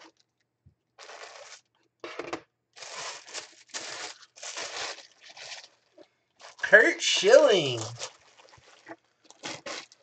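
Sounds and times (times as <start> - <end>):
plastic bag crinkling: 1.0 - 1.7, 2.8 - 10.0.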